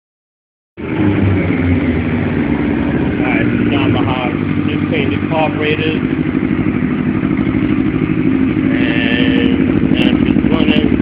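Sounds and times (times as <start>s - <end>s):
motorcycle engine running: 0.8s - 11.0s.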